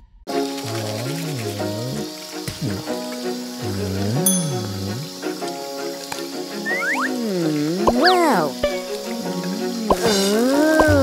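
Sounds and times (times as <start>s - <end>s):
background music: 0.3s - 11.0s
croaky swooping voice-like sound: 0.7s - 2.9s, 6.6s - 8.6s
cartoon whistle slides: 6.6s - 7.2s, 7.8s - 8.5s.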